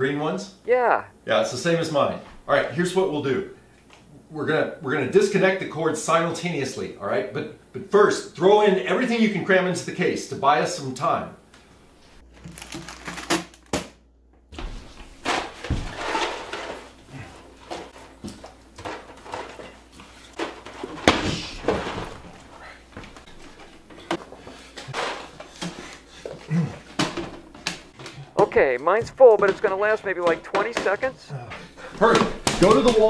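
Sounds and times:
plastic snack bag crinkling: 12.3s - 13.8s.

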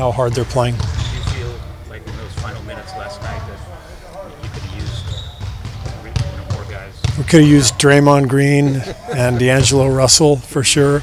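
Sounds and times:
basketballs bouncing on gym floor: 0.0s - 3.6s, 4.4s - 8.1s.

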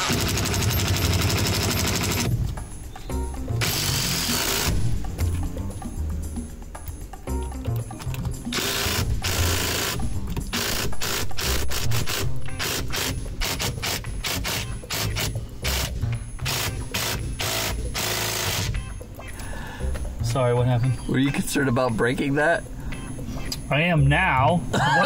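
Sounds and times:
cordless driver bursts: 0.0s - 2.3s, 3.6s - 4.8s, 8.5s - 18.7s.

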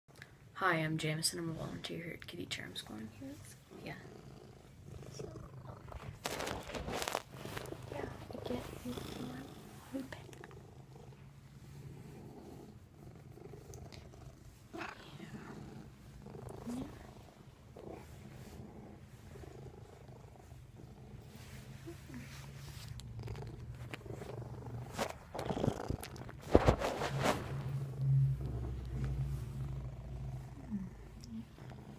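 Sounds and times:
cat purring: 1.1s - 31.9s
rustling from handling: 5.8s - 9.9s, 26.2s - 27.9s.

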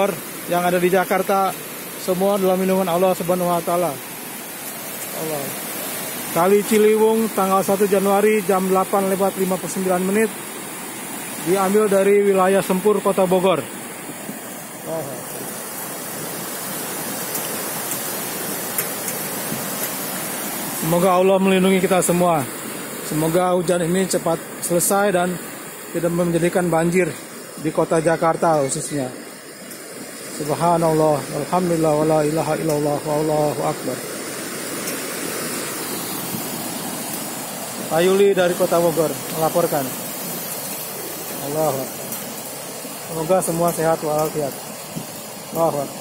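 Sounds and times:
river rushing: 0.0s - 46.0s.

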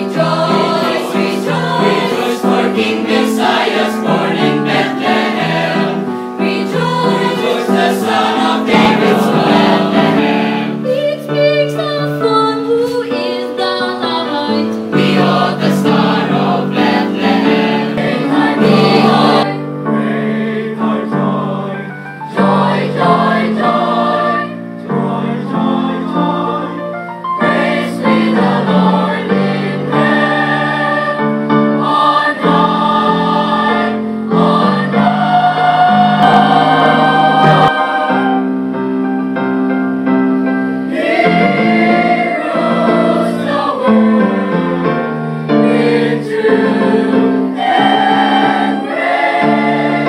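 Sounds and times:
youth choir singing: 0.0s - 38.9s, 40.8s - 50.0s.

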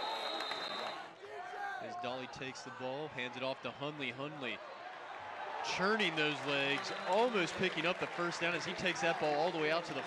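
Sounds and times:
referee's whistle: 0.0s - 1.1s
stadium crowd shouting: 0.0s - 10.0s.

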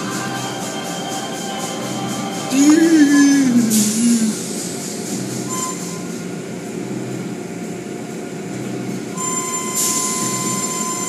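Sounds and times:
car wash mechanical hum: 0.0s - 11.0s
brief high tone: 5.5s - 6.1s, 9.2s - 11.0s.

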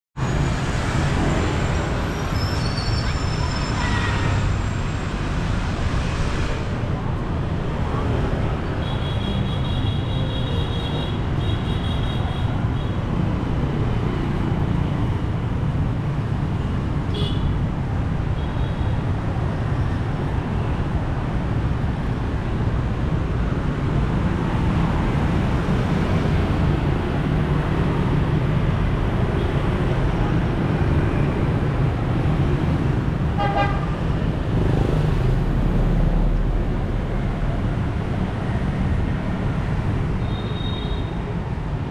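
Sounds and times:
scooters and cars passing: 0.2s - 41.9s
vehicle horn toots: 33.4s - 33.9s.

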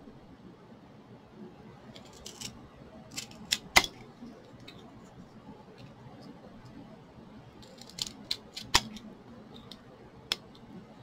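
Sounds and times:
wooden stick cracking: 7.6s - 9.0s.

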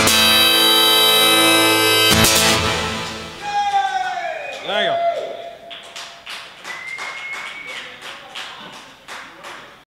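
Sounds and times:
song last note: 0.0s - 3.6s
thin high tone: 0.0s - 3.6s
small audience clapping: 3.5s - 9.9s.

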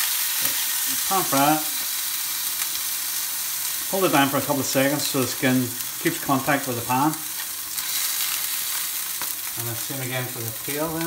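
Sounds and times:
fish sizzling in a frying pan: 0.0s - 11.0s.

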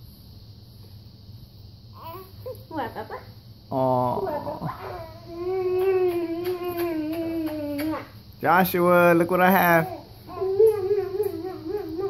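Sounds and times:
baby whining cry: 9.8s - 12.0s.

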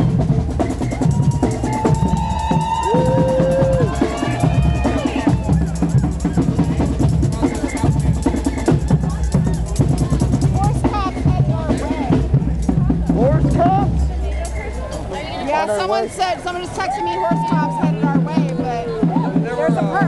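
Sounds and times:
drums beating: 0.0s - 15.1s, 16.2s - 20.0s
crowd voices: 0.0s - 20.0s
people shouting: 0.8s - 6.9s, 16.6s - 18.2s.

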